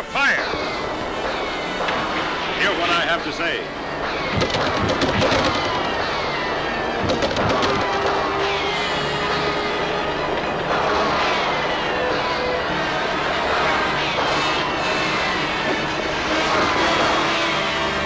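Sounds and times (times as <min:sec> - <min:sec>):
voices calling out: 0:00.0 - 0:18.0
sharp cracks: 0:04.0 - 0:08.5.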